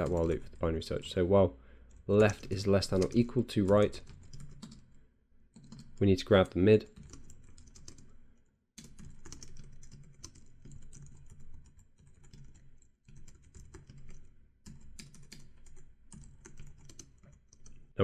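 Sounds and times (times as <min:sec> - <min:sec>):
computer keyboard typing: 0:00.0 - 0:00.8, 0:01.8 - 0:08.1, 0:08.8 - 0:17.9.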